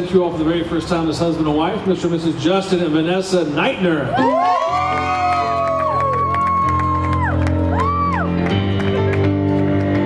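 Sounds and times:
guests cheering and whooping: 0:04.1 - 0:08.9
music with steady bass line: 0:04.2 - 0:10.0
hand claps: 0:04.8 - 0:10.0.

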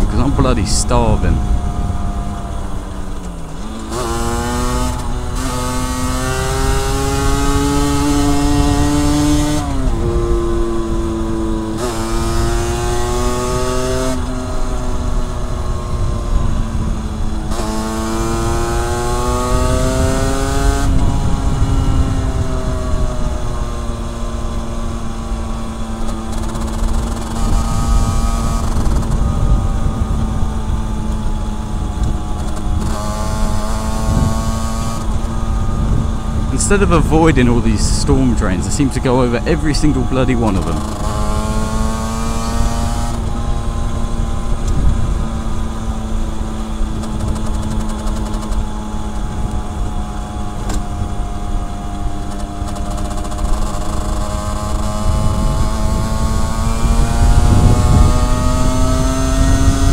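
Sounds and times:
motorcycle engine accelerating: 0:00.0 - 0:59.9
wind rushing: 0:27.0 - 0:43.3, 0:54.6 - 0:59.9.

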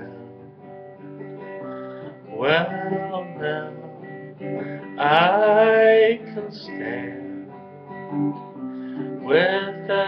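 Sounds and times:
acoustic guitar strumming: 0:00.0 - 0:10.0.

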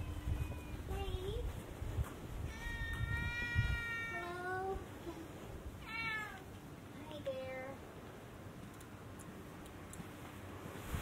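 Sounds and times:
cat meowing: 0:02.5 - 0:04.5, 0:05.8 - 0:06.5.

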